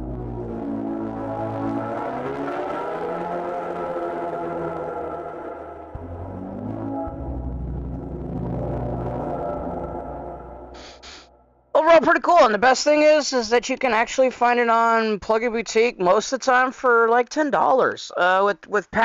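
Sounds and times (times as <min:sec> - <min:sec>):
distorted synthesizer pad: 0:00.0 - 0:12.0.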